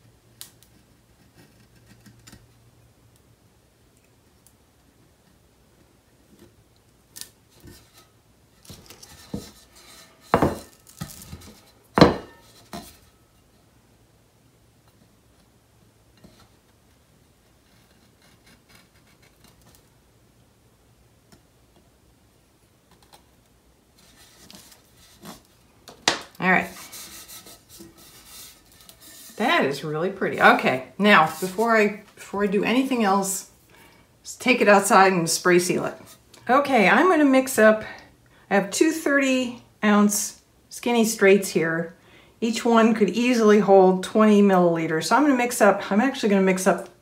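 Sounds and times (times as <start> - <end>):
hands rubbing paper: 26.6 - 29.8, 31.1 - 32.0.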